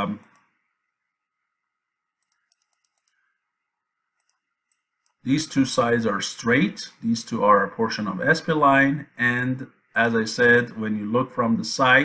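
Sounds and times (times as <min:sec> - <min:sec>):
computer mouse clicks: 0:02.2 - 0:03.2, 0:04.1 - 0:05.2.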